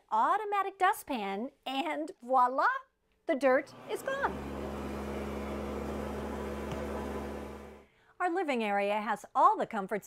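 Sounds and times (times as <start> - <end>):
central vacuum running: 3.6 - 7.8.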